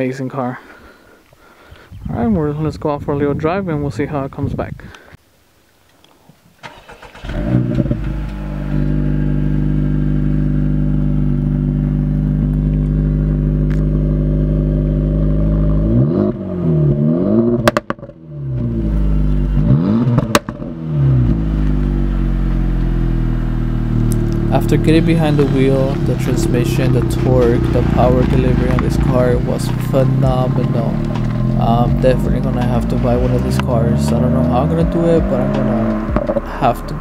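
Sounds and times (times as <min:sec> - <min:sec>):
car engine starting and idling: 0:06.6 - 0:37.0
exhaust cracks: 0:06.6 - 0:37.0
engine revving: 0:06.9 - 0:37.0.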